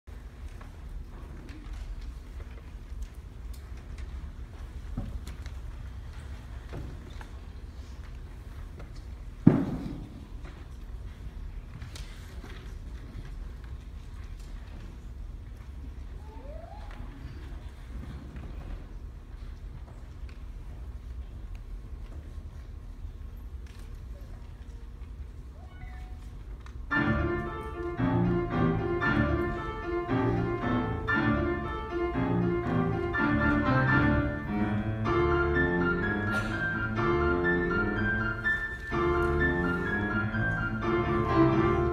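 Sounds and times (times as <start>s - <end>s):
grand piano playing: 26.9s - 41.9s.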